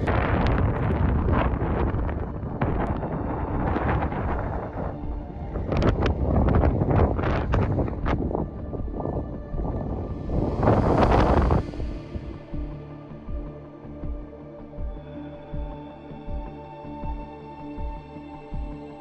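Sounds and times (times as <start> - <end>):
wind buffeting microphone: 0.0 - 13.5.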